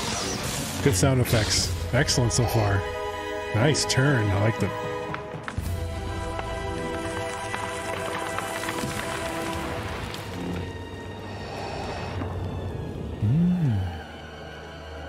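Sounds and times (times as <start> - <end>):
dark film score music: 0.0 - 15.0.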